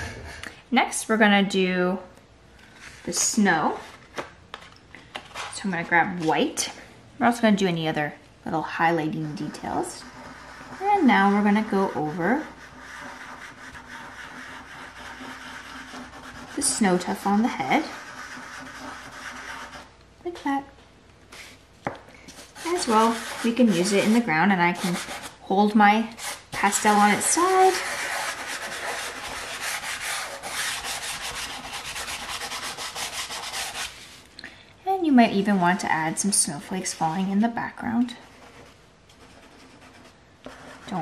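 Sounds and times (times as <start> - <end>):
faint steady hum: 0.0 - 41.0
pastel stick scratching on paper: 9.1 - 19.9, 22.4 - 25.4, 26.1 - 34.0, 38.2 - 41.0.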